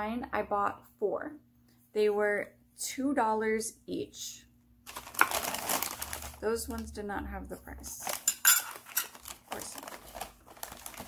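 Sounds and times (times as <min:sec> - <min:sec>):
porcelain dishes clinking: 0:08.2 - 0:09.2.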